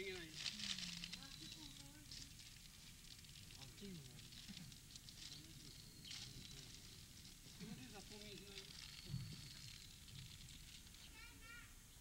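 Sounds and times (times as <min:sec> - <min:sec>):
faint people talking: 0:00.0 - 0:02.6, 0:03.5 - 0:09.9, 0:10.8 - 0:11.8
crackling rustle: 0:00.0 - 0:11.7.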